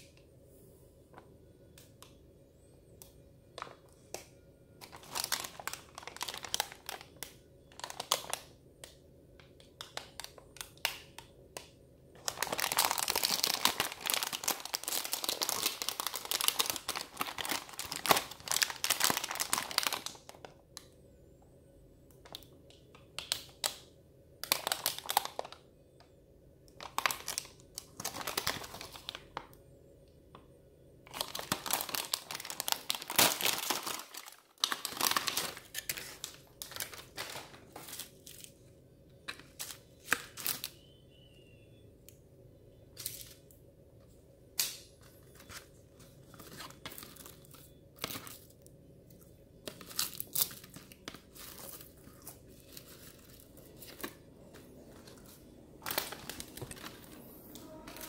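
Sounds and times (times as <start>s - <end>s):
plastic snack pack crinkling: 3.0s - 21.0s, 22.1s - 25.7s, 26.6s - 29.6s, 31.1s - 41.0s, 44.6s - 58.0s.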